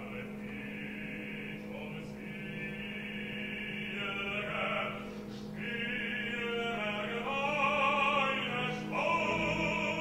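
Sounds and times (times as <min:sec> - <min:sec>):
opera singer with vibrato: 0:00.0 - 0:10.0
orchestra playing: 0:06.3 - 0:10.0.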